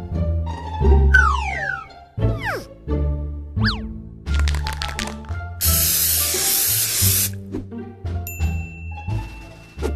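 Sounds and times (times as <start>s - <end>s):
spray paint can hissing: 4.9s - 7.4s.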